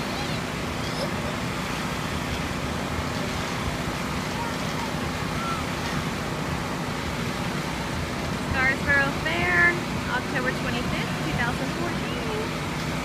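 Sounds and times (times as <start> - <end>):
machine drone with low rumble: 0.0 - 13.0.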